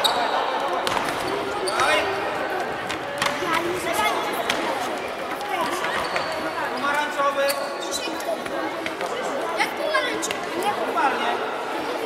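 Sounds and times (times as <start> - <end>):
voices shouting and chattering: 0.0 - 12.0.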